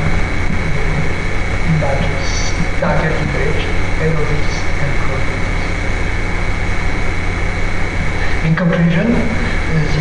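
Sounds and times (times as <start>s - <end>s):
low hum: 0.0s - 10.0s
thin high whine: 0.0s - 10.0s.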